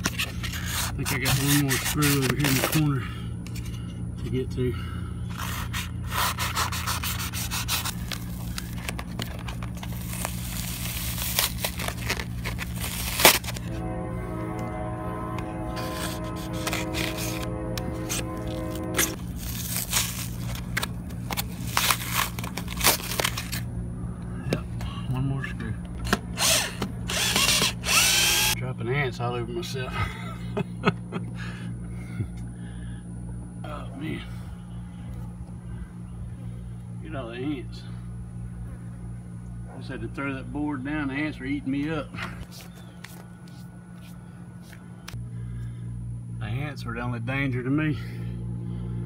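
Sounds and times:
power drill running: 0:26.3 - 0:28.6.

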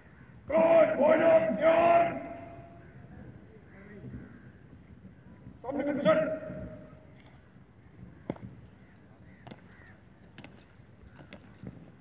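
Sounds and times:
crows cawing faintly: 0:02.6 - 0:03.2, 0:04.1 - 0:05.3, 0:07.2 - 0:10.5.

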